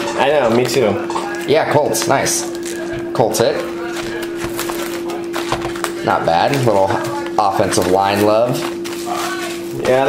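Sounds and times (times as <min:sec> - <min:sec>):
trading cards clicking and rustling: 0:00.5 - 0:10.0.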